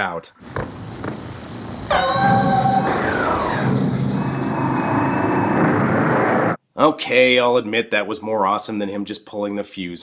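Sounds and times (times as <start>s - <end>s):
dense noisy sound effects: 0.4s - 6.6s
falling tone: 0.6s - 7.3s.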